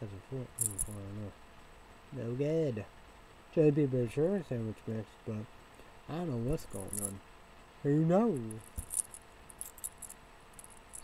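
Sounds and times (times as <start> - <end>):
man speaking: 0.0 - 1.4, 2.2 - 2.9, 3.6 - 5.5, 6.1 - 7.2, 7.9 - 8.7.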